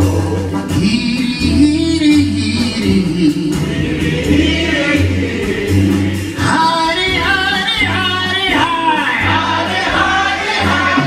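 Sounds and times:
bass line: 0:00.0 - 0:11.0
jazz big band: 0:00.0 - 0:11.0
gospel choir singing: 0:03.2 - 0:11.0.

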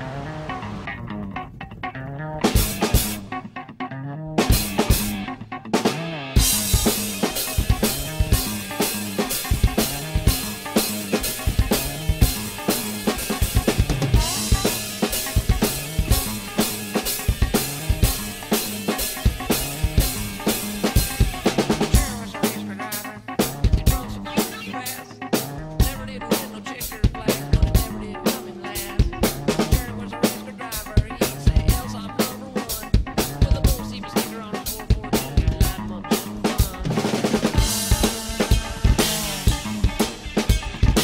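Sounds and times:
drum kit played hard: 0:00.0 - 0:03.8, 0:04.4 - 0:41.0
band backing music: 0:00.0 - 0:41.0.

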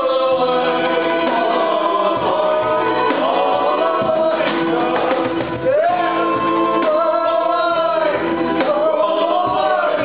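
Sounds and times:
voices singing together: 0:00.0 - 0:10.0.

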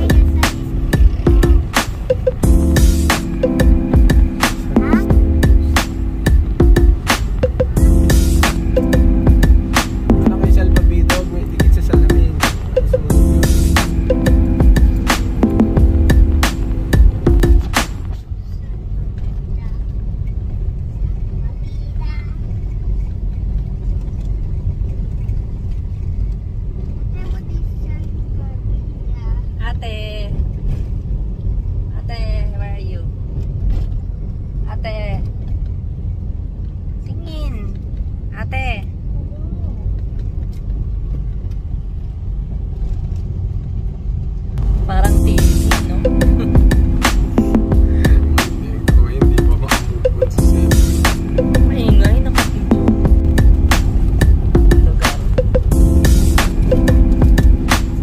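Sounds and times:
music: 0:00.0 - 0:18.2, 0:44.6 - 0:58.0
passengers talking: 0:00.0 - 0:20.1, 0:44.6 - 0:58.0
car engine and tyres rumbling: 0:00.0 - 0:58.0.

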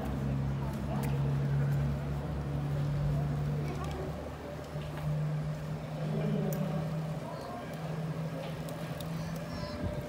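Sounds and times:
faint voices of passers-by: 0:00.0 - 0:10.0.

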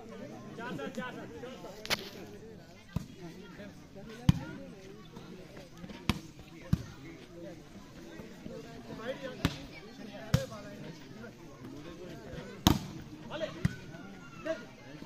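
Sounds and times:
voices of players and onlookers: 0:00.0 - 0:15.0
volleyball slaps: 0:12.6 - 0:13.0.

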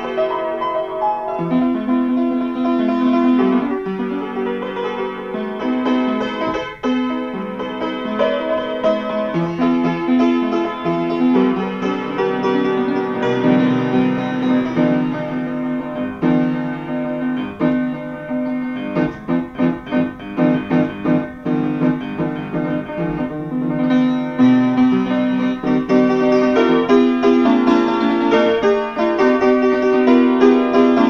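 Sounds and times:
upright piano playing chords: 0:00.0 - 0:31.0.

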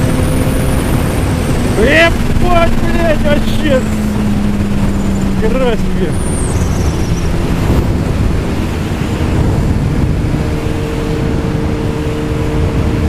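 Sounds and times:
motorcycle engine cruising: 0:00.0 - 0:13.0
wind rush on microphone: 0:00.0 - 0:13.0.

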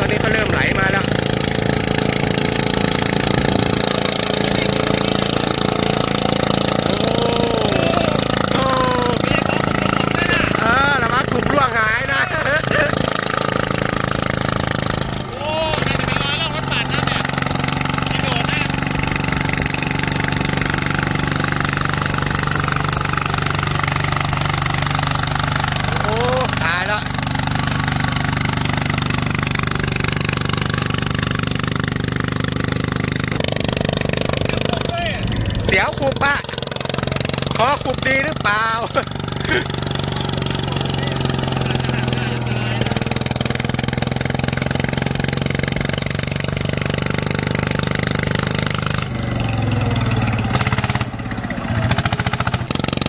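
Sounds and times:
diesel engine running: 0:00.0 - 0:53.0.

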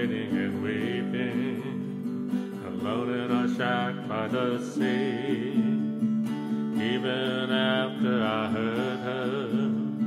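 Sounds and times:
acoustic guitars strumming: 0:00.0 - 0:10.0.

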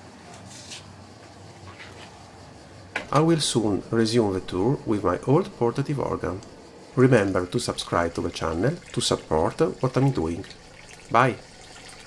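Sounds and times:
faint background hiss: 0:02.2 - 0:11.5.

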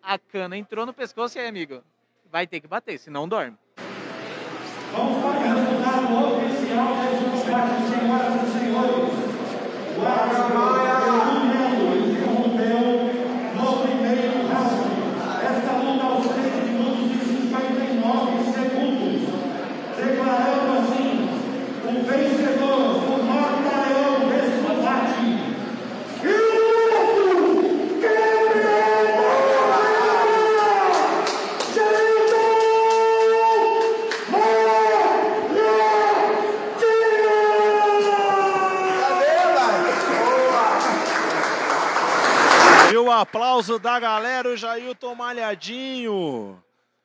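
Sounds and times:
announcer shouting over pa: 0:26.2 - 0:31.0
crowd cheering: 0:26.2 - 0:44.4.

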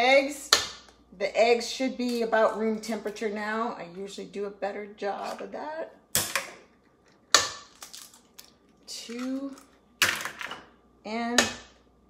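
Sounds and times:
egg cracking: 0:06.1 - 0:10.5.

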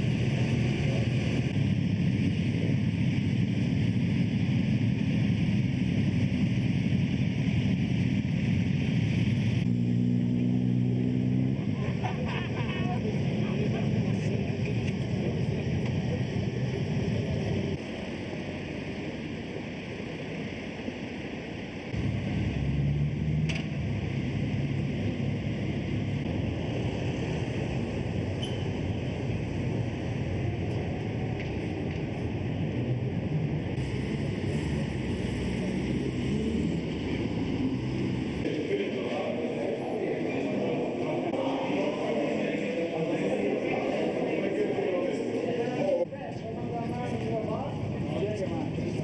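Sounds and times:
motorcycle engines rumbling: 0:00.0 - 0:49.0
voices: 0:10.3 - 0:22.5, 0:23.7 - 0:49.0.

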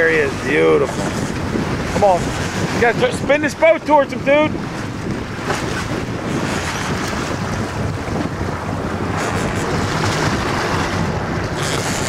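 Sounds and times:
boat engine: 0:00.0 - 0:12.0
water washing along hull: 0:00.0 - 0:12.0
wind on microphone: 0:00.0 - 0:12.0.

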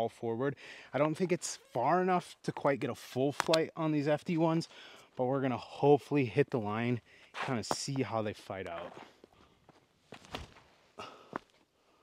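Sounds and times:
footsteps scuffing on dirt path: 0:07.3 - 0:11.6.

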